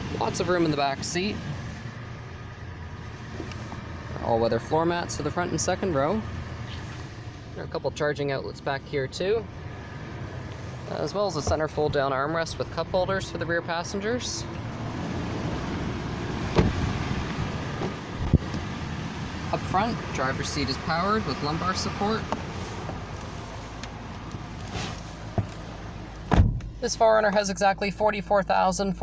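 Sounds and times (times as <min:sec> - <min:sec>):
low outdoor background noise: 0:00.0 - 0:29.0
low steady rumble: 0:00.0 - 0:29.0
car rear door shutting: 0:16.4 - 0:18.6, 0:24.7 - 0:25.6, 0:26.2 - 0:26.8.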